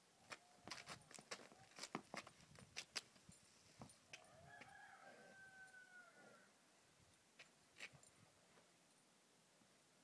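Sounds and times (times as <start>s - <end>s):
rooster crowing: 4.2s - 6.5s.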